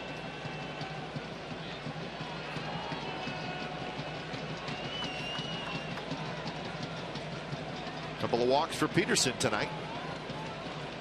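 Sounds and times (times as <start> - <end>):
crowd voices hum: 0.0 - 11.0.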